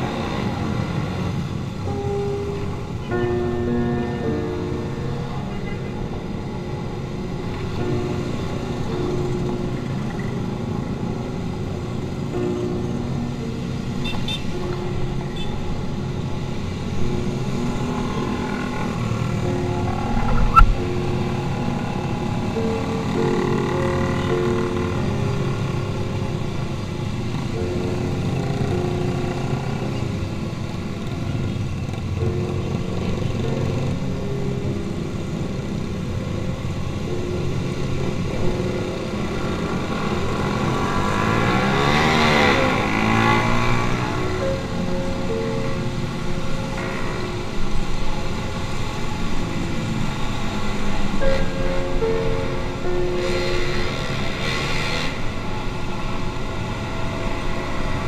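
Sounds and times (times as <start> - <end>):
motorcycle engines droning: 0.0 - 58.0.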